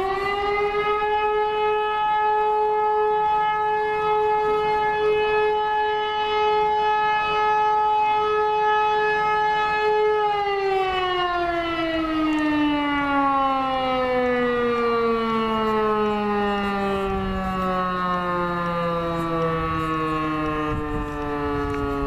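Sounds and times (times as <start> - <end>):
fire siren wailing: 0.0 - 22.0.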